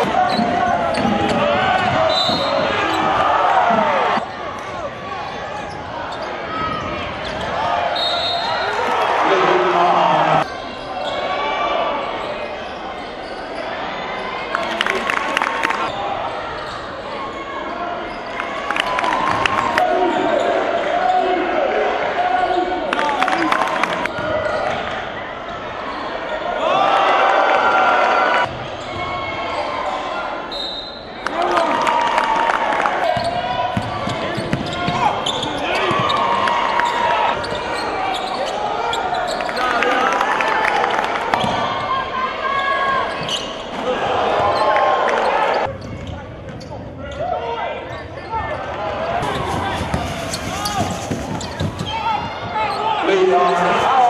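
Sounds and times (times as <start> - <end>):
basketballs bouncing on court: 0.0 - 4.0, 33.0 - 36.5, 45.7 - 47.0, 49.2 - 52.8
crowd voices: 0.0 - 54.0.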